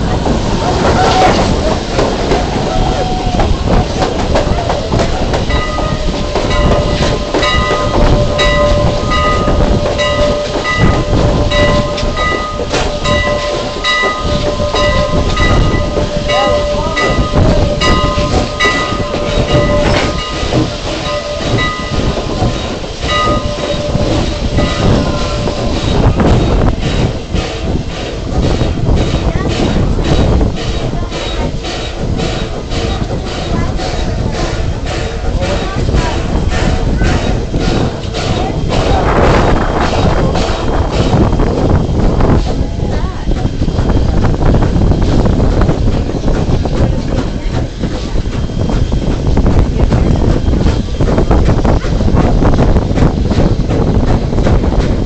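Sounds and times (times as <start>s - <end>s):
train wheels clacking on rails: 0.0s - 55.0s.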